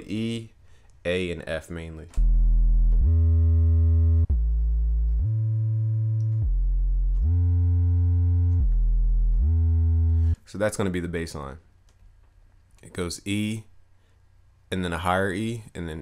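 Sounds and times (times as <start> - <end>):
distorted synth sub bass: 2.2 - 10.4.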